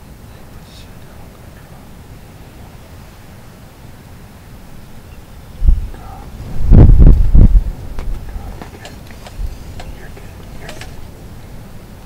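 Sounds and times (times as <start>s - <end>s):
faint outdoor background: 0.0s - 12.0s
low rumbling bumps on microphone: 5.6s - 9.9s.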